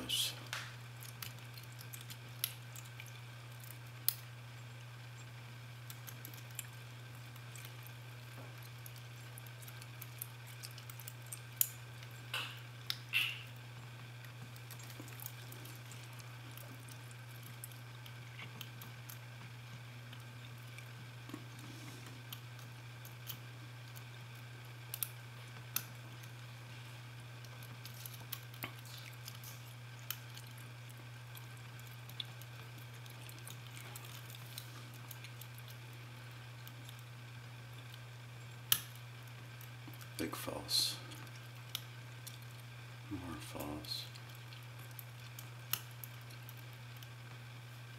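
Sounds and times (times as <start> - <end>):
steady low hum: 0.0 - 47.9.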